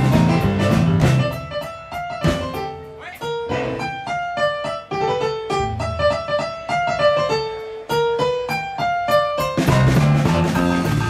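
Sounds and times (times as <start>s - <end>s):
boogie-woogie piano: 0.0s - 11.0s.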